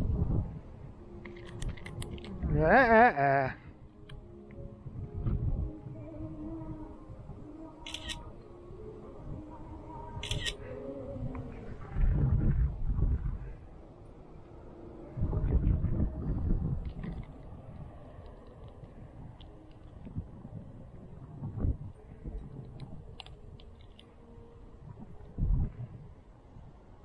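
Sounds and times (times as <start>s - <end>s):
wind buffeting microphone: 0.0s - 3.0s, 4.6s - 27.0s
camera shutter sound: 7.8s - 8.2s, 10.2s - 10.6s.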